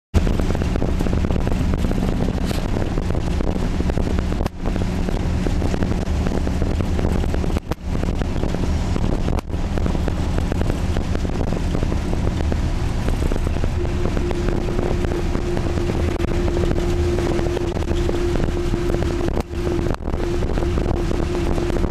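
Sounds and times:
vehicle engine and road rumble: 0:00.1 - 0:21.9
wind on microphone: 0:00.2 - 0:21.9.

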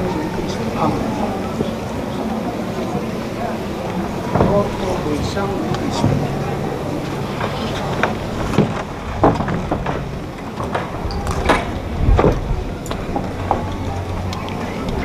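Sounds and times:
murmured voices: 0:00.0 - 0:15.0.

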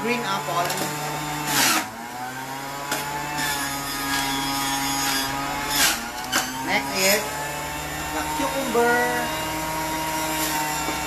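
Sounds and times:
electric juicer grinding apple: 0:00.0 - 0:11.0
loud juicer burst: 0:00.2 - 0:08.6.

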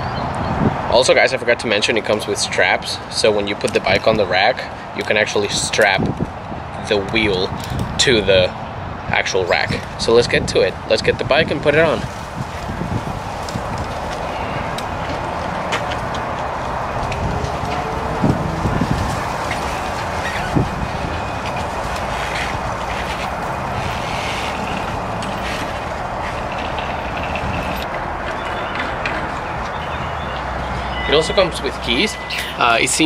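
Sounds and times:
rushing outdoor noise: 0:00.0 - 0:33.0.

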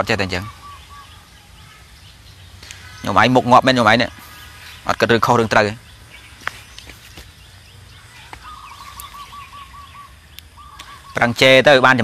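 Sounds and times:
birds chirping: 0:00.0 - 0:12.0
rapid pulsing bird call: 0:00.0 - 0:12.0.

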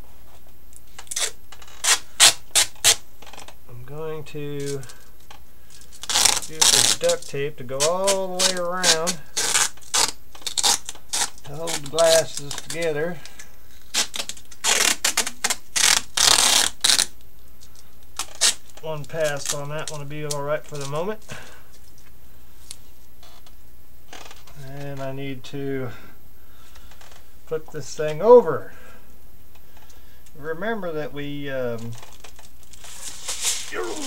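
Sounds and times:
duct tape ripping off roll: 0:00.9 - 0:03.5, 0:04.6 - 0:05.0, 0:05.8 - 0:12.9, 0:13.8 - 0:17.2, 0:18.2 - 0:20.0, 0:31.9 - 0:34.0.

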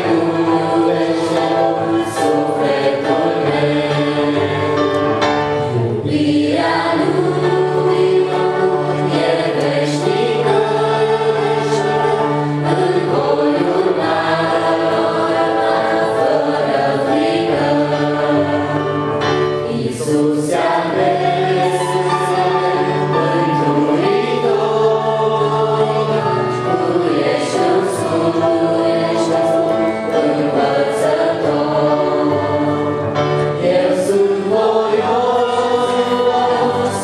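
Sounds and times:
digital piano accompaniment: 0:00.0 - 0:37.0
voices singing a song: 0:00.0 - 0:37.0.

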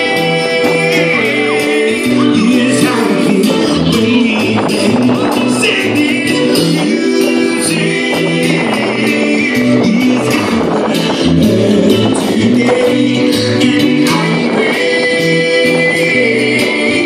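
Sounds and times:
drum and percussion beat: 0:00.0 - 0:17.0
keyboard chords: 0:00.0 - 0:17.0
reggae bass line: 0:00.0 - 0:17.0.

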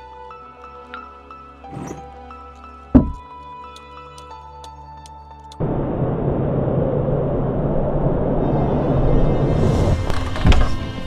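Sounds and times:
cartoon rumbling wind whoosh: 0:05.6 - 0:10.1.

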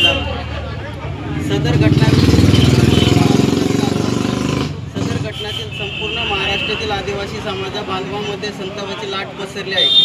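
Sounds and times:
street background noise: 0:00.0 - 0:10.0.

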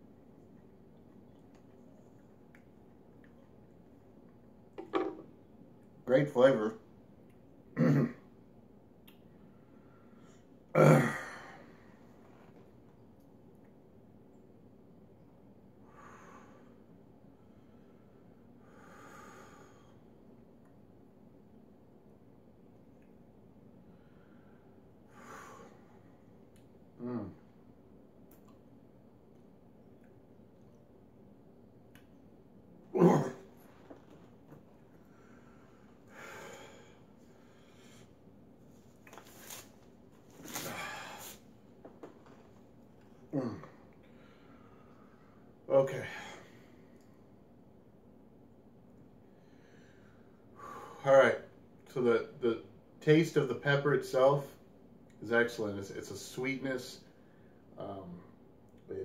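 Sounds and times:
man grunting: 0:10.8 - 0:11.5, 0:27.0 - 0:27.4, 0:32.9 - 0:33.5, 0:43.3 - 0:43.8
soft breaths: 0:15.8 - 0:20.2, 0:33.5 - 0:42.6
man breathing noisily: 0:17.5 - 0:20.0
guttural throat noise: 0:33.0 - 0:33.4.

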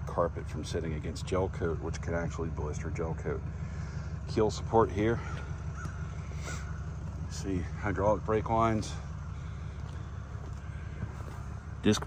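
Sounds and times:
steady low hum: 0:00.0 - 0:12.0
crow cawing: 0:05.0 - 0:07.8, 0:08.6 - 0:11.4.

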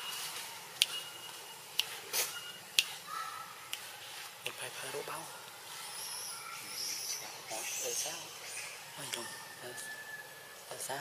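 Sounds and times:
thin high-pitched calls: 0:05.7 - 0:11.0.

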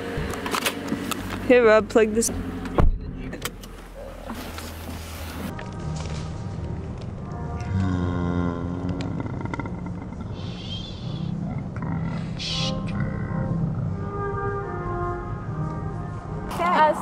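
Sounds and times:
car interior hum: 0:00.0 - 0:05.5
background music with held notes: 0:05.5 - 0:17.0.

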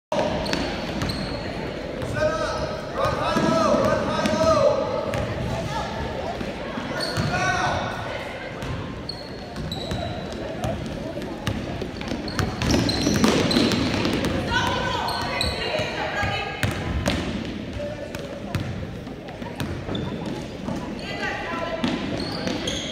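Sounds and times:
sneaker squeaks: 0:00.2 - 0:02.1, 0:06.9 - 0:07.6, 0:08.6 - 0:16.4, 0:19.5 - 0:22.9.

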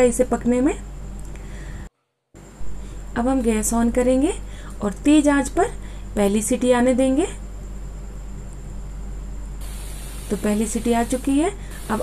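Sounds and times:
pressure cooker steam hiss: 0:09.6 - 0:12.0.

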